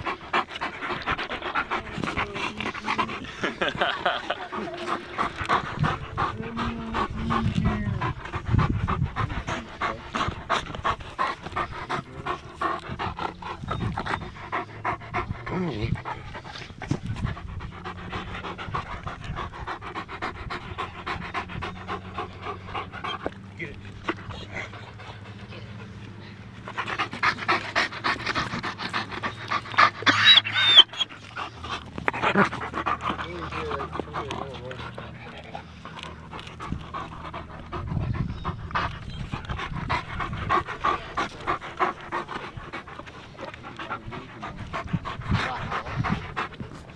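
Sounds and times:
dog panting: 0.0 - 46.9.

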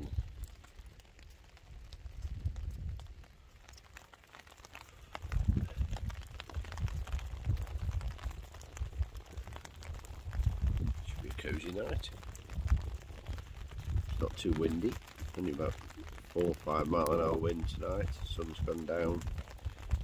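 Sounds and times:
low rumble on microphone: 0.0 - 3.8, 4.8 - 20.0
rain pattering on umbrella: 0.0 - 20.0
wood fire crackling: 0.0 - 20.0.

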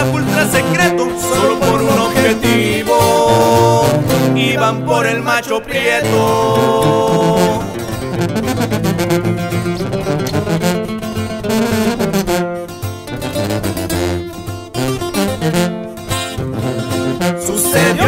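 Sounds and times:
bass line: 0.0 - 5.2, 5.9 - 12.2
plucked acoustic guitar melody: 0.0 - 18.0.

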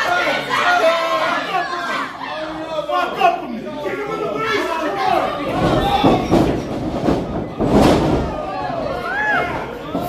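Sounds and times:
wrestlers thudding onto ring: 5.4 - 10.0.

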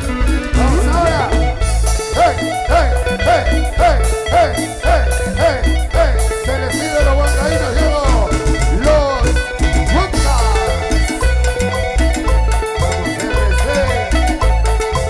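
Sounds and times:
live band playing dance music: 0.0 - 15.0.

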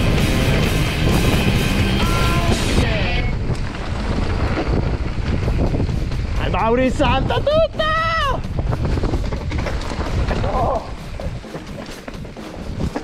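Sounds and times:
music: 0.0 - 3.4, 5.5 - 13.0
wind rumble on microphone: 0.0 - 13.0.

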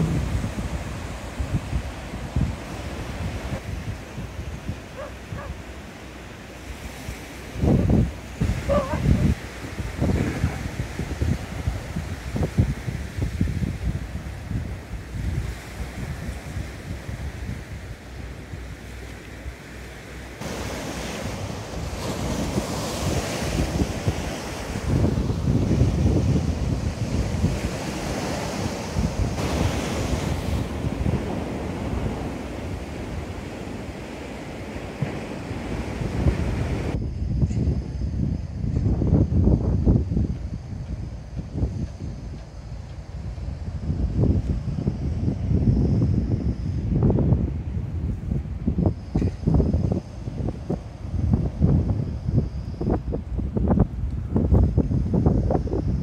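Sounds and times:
sea waves breaking on shore: 0.0 - 37.0
wind buffeting microphone: 0.0 - 56.0.

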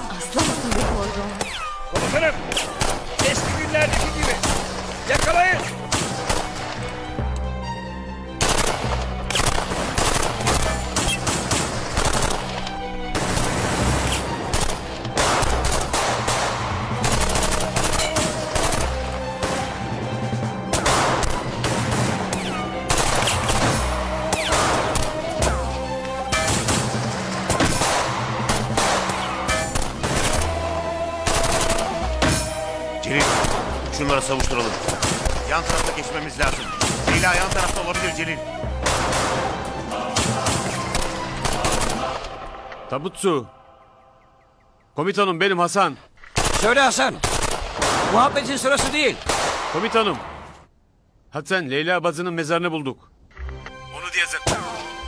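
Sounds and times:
dramatic music with low notes: 0.0 - 44.9, 53.3 - 55.0
single gunshots: 0.4 - 6.7, 8.4 - 19.7, 20.7 - 25.2, 26.3 - 30.5, 31.3 - 38.1, 38.8 - 39.6, 46.4 - 50.4.

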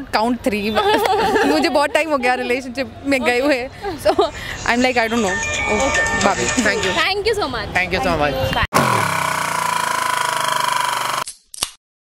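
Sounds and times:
pulsing tone: 8.8 - 11.2.

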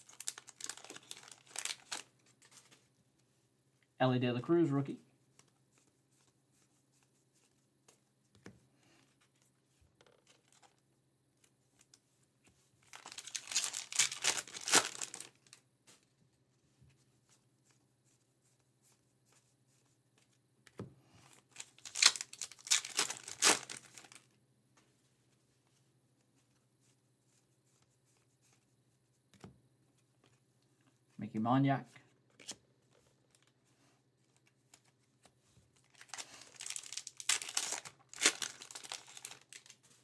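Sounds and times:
wrappers torn and crinkled: 0.0 - 2.1, 12.9 - 15.6, 21.5 - 24.3, 35.8 - 39.8.

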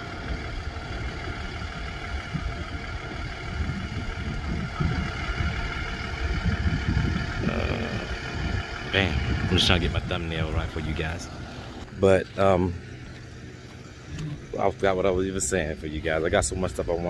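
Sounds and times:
diesel truck engine idling: 0.0 - 17.0.

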